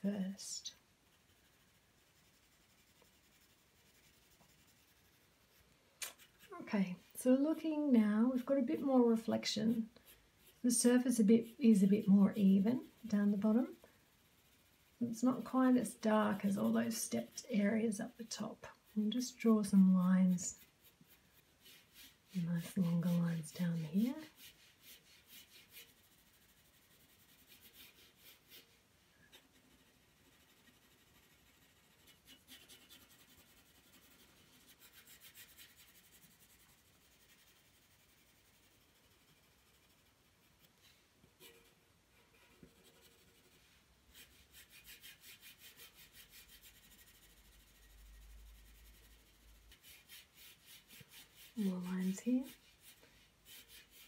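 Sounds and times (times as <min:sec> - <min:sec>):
pencil scratching on paper: 0:01.0 - 0:40.8, 0:41.4 - 0:54.0.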